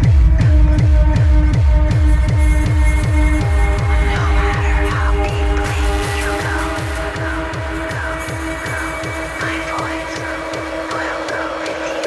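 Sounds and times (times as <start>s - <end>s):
industrial techno: 0.0s - 12.0s.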